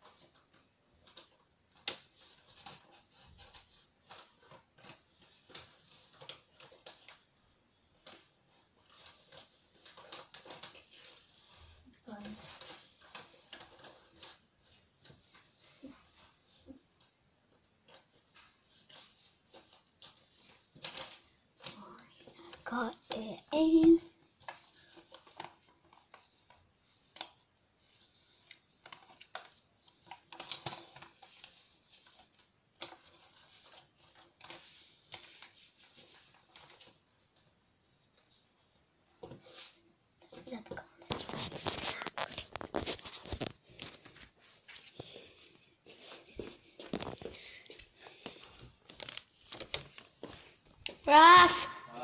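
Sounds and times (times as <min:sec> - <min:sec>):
paper envelope rustling: 0:00.0 - 0:51.8.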